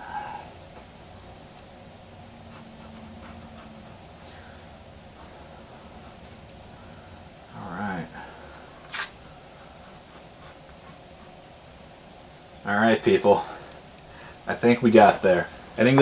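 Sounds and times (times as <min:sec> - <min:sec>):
pencil scratching on paper: 0:00.7 - 0:01.7, 0:02.5 - 0:04.3, 0:05.2 - 0:06.4, 0:09.6 - 0:12.0.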